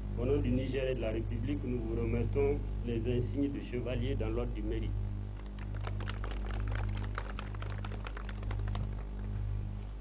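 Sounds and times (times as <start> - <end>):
steady low hum: 0.0 - 10.0
rapid sharp clicks: 5.4 - 9.3.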